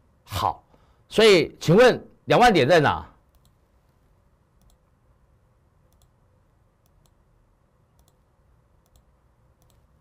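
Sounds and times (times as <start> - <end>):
computer mouse clicks: 3.3 - 4.0, 4.6 - 4.9, 5.9 - 6.2, 6.8 - 7.2, 7.9 - 10.0.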